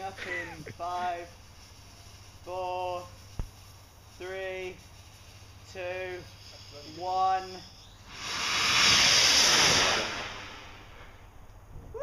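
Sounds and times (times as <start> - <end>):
rocket motor hissing: 0.0 - 11.3.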